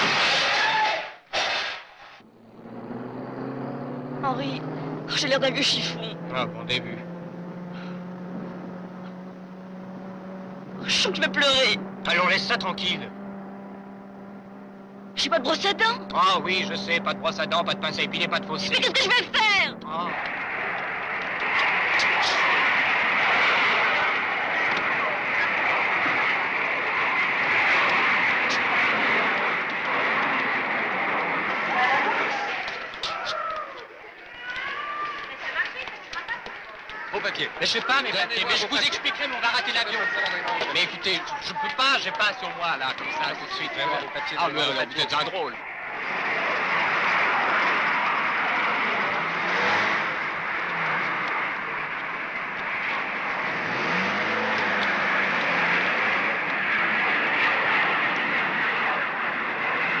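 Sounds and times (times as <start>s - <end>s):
minibus engine: 0.0s - 60.0s
voices calling out: 0.0s - 60.0s
general hubbub: 15.1s - 60.0s
jet airliners: 17.4s - 33.8s, 37.2s - 60.0s.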